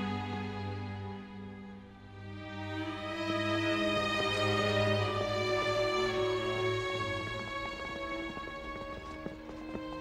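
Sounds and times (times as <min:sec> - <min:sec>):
hurried footsteps on stone: 0:05.1 - 0:10.0.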